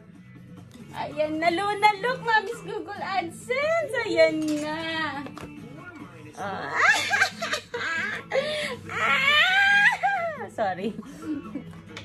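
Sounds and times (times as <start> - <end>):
faint cartoon music: 0.0 - 12.0.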